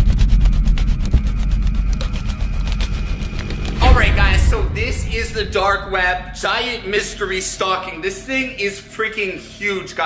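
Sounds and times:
deep bass rumble: 0.0s - 7.6s.

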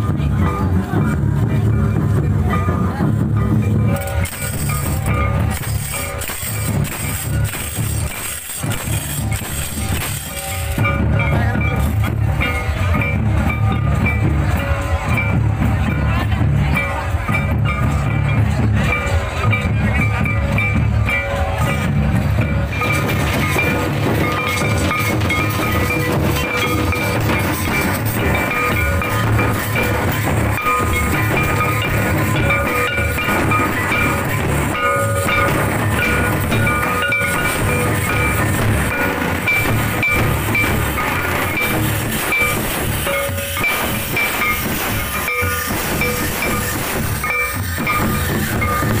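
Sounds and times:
high-pitched melody: 0.0s - 49.0s
large drums playing a driving rhythm: 0.0s - 49.0s.

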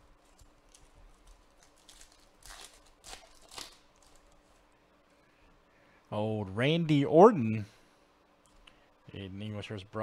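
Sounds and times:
foil pack crinkling: 0.0s - 4.6s
foil pack ripping: 0.2s - 4.4s.

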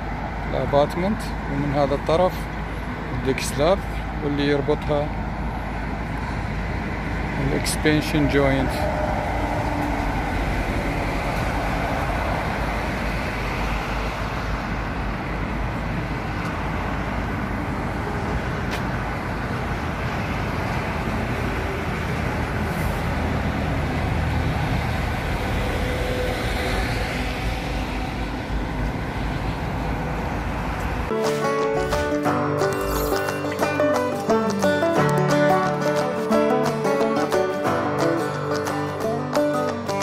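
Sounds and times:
motorway traffic rush: 0.0s - 40.0s.

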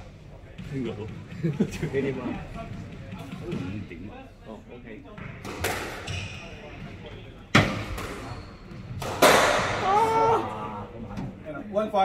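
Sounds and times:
squash ball smacks echoing: 5.4s - 6.1s, 8.9s - 9.9s.

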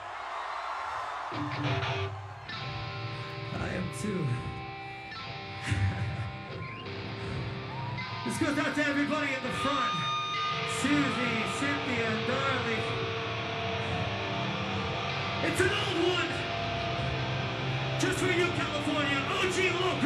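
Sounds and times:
crowd shouting and cheering: 0.0s - 20.0s
electric guitar ringing notes: 1.3s - 20.0s.

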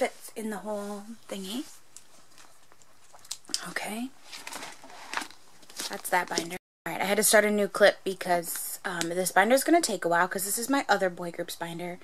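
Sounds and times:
plastic sleeves crinkling: 4.2s - 6.6s.

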